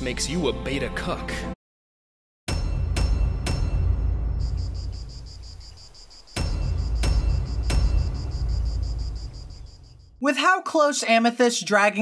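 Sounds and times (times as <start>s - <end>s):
deep booming hits: 2.5s - 10.2s
crickets chirping: 4.3s - 10.2s.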